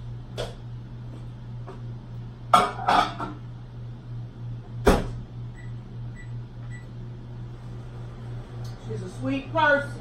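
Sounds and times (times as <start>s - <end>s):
steady low hum: 0.0s - 10.0s
microwave keypad beeps: 5.5s - 7.0s.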